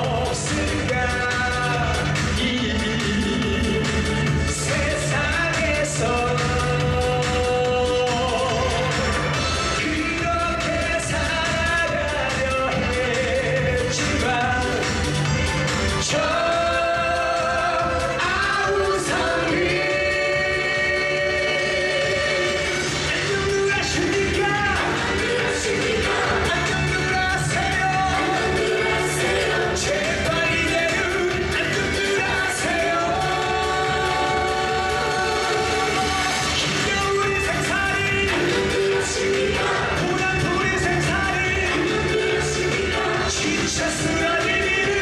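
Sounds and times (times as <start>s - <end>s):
backing music with a beat: 0.0s - 45.0s
band accompaniment: 0.0s - 45.0s
man singing: 0.0s - 45.0s
women singing together: 18.5s - 22.8s.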